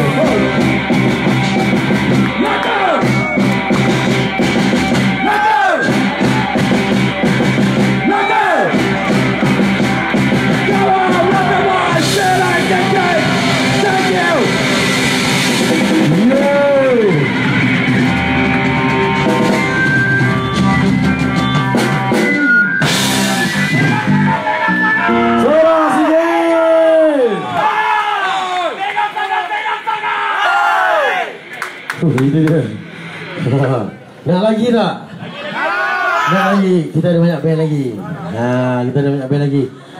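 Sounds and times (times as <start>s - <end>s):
punk band sustained notes: 0.0s - 27.4s, 30.4s - 35.4s
men shouting long calls: 8.0s - 8.8s, 10.5s - 14.8s
electric guitar pitch swoop: 8.7s - 25.5s.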